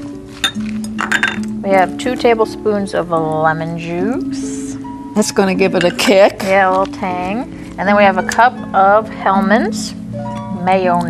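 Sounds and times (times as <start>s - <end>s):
background music with held notes: 0.0s - 11.0s
glassware clinking: 0.4s - 1.5s.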